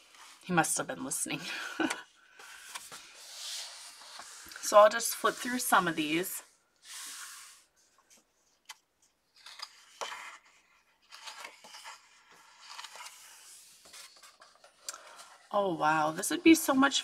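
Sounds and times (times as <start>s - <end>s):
paper rubbing and rustling: 2.4s - 15.5s.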